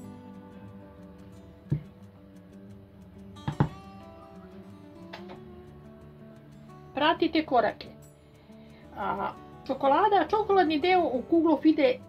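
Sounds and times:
soft guitar music: 0:00.0 - 0:12.0
sharp knocks: 0:03.4 - 0:03.9.

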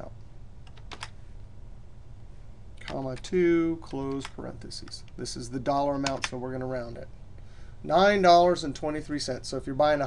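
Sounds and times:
faint low steady hum: 0:00.0 - 0:10.0
computer keyboard keystrokes: 0:00.6 - 0:01.2.

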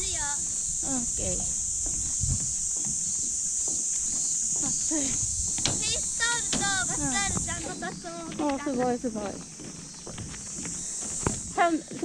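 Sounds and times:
girls chatting: 0:00.0 - 0:02.1, 0:04.0 - 0:12.0
footsteps on wooden boards: 0:00.0 - 0:12.0
high-pitched insect hiss: 0:00.0 - 0:12.0.

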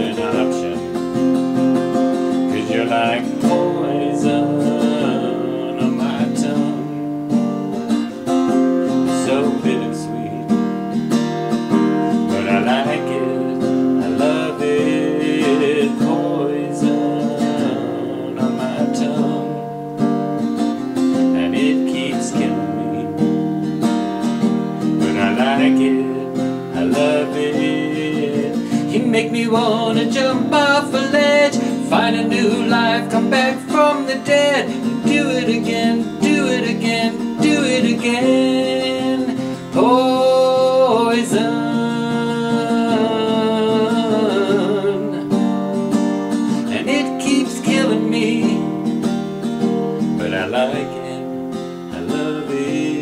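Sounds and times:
acoustic guitar chords: 0:00.0 - 0:53.0.

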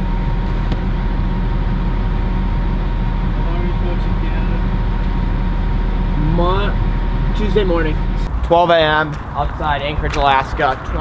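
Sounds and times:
truck engine rumble inside cabin: 0:00.0 - 0:11.0.

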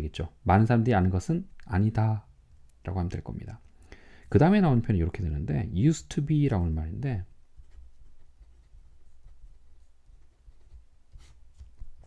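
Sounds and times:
pen scratching on paper: 0:07.6 - 0:12.0.

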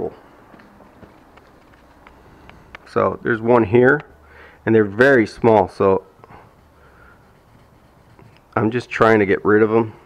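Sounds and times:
sandpaper rubbing on clear coat: 0:06.5 - 0:09.0.

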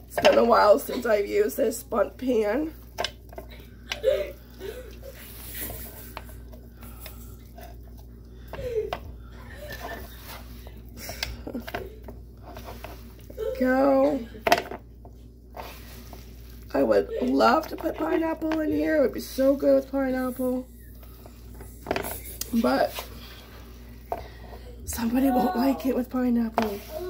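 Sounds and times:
batter scraped from bowl: 0:15.5 - 0:16.7, 0:26.6 - 0:27.0
person speaking: 0:24.9 - 0:27.0.

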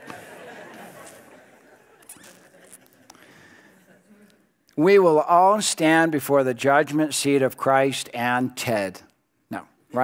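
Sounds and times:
congregation laughing: 0:00.0 - 0:04.6.

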